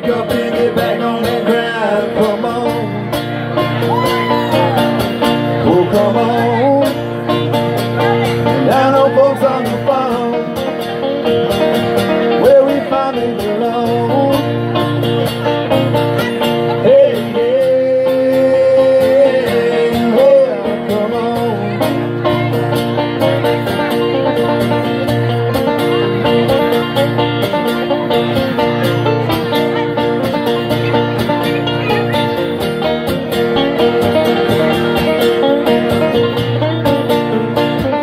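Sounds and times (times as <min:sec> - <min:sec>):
acoustic guitar strumming: 0:00.0 - 0:38.0
banjo: 0:00.0 - 0:38.0.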